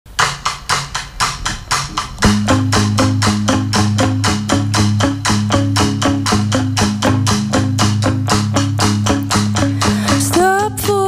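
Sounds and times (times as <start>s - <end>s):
drum kit strokes: 0.1s - 11.0s.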